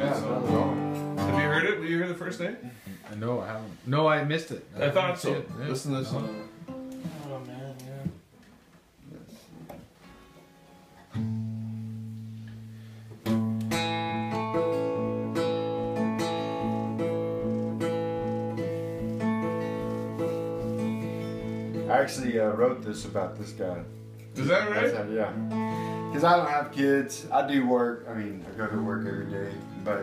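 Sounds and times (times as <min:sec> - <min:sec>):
faint guitar plucks: 0:00.0 - 0:01.7, 0:05.4 - 0:08.2, 0:10.2 - 0:27.2, 0:28.5 - 0:30.0
acoustic guitar chord strumming: 0:00.0 - 0:01.9, 0:05.3 - 0:08.1, 0:09.9 - 0:30.0.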